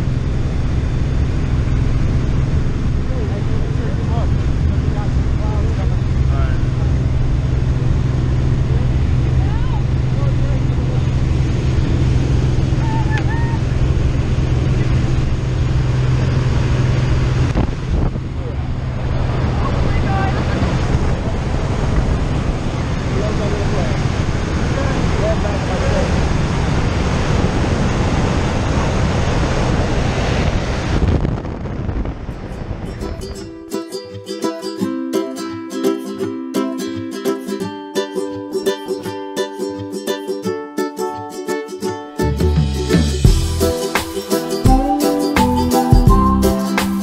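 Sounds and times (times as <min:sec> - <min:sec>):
light aircraft engine and propeller: 0:00.0 - 0:33.4
wind rushing: 0:11.0 - 0:33.6.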